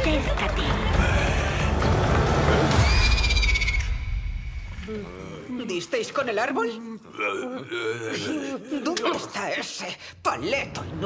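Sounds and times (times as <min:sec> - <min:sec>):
trailer music and sound effects: 0:00.0 - 0:05.2.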